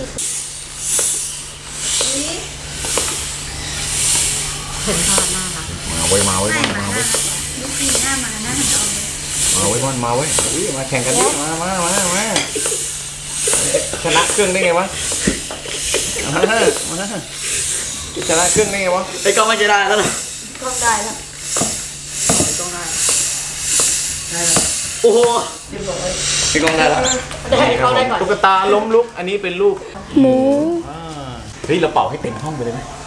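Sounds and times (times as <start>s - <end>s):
air pump hissing: 0.0s - 30.0s.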